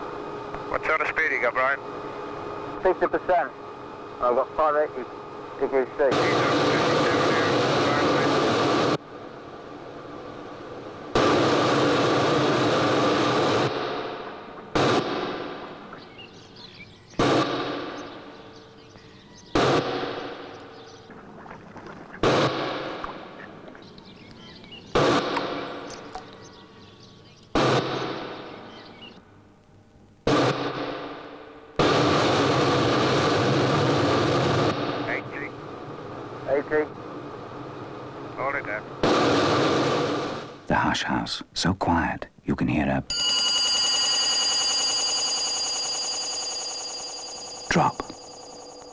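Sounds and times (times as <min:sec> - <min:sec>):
jet engine surges: 0:00.0 - 0:18.4, 0:30.3 - 0:40.7
jet engine running: 0:00.0 - 0:18.8, 0:19.5 - 0:26.5, 0:30.2 - 0:40.7.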